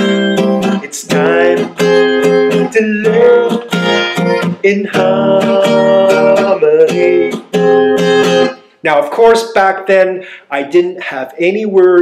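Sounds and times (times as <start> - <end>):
acoustic guitar strumming: 0.0 - 9.8
man singing: 0.0 - 12.0.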